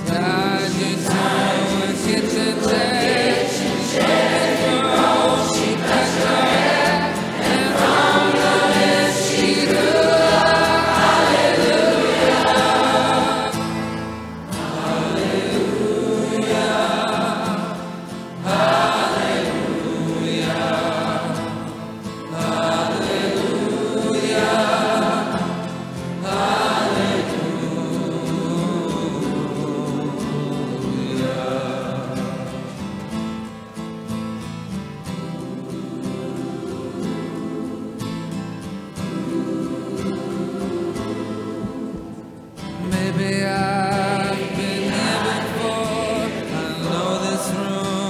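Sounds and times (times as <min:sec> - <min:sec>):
choir singing sustained notes: 0:00.0 - 0:33.2, 0:34.7 - 0:48.0.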